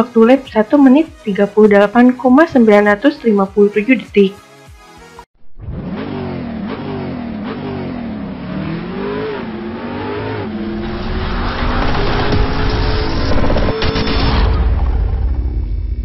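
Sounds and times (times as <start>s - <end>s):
car engine accelerating: 5.5s - 15.6s
rush of noise: 10.2s - 16.0s.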